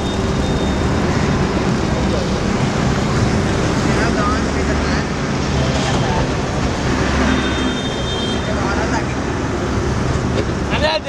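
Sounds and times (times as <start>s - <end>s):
low traffic rumble: 0.0s - 11.0s.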